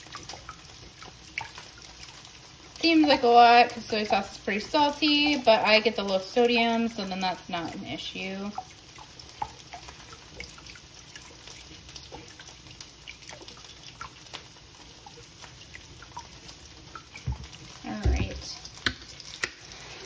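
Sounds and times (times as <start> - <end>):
liquid pouring into water: 0.0 - 20.0
meat frying in a pan: 0.0 - 20.0.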